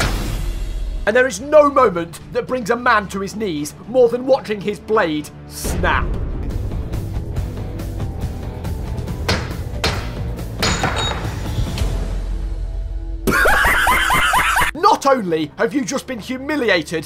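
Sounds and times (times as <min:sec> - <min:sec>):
man speaking: 0:01.1 - 0:06.2
blade striking wooden pole: 0:09.3 - 0:11.2.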